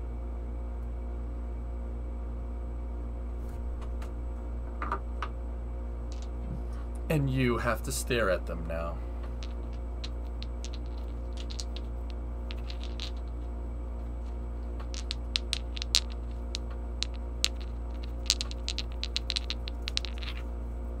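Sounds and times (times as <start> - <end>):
low electrical hum: 0.0 - 21.0
stones clicking together: 6.1 - 6.3, 9.2 - 20.5.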